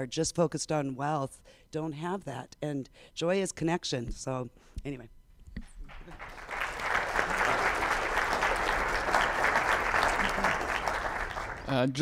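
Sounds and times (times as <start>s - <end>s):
audience applauding: 5.9s - 12.0s.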